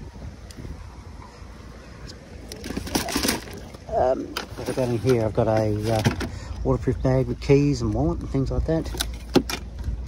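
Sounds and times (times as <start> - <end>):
wind rumble on microphone: 0.0 - 2.4, 6.7 - 10.0
gear rustling in plastic crate: 2.6 - 6.3.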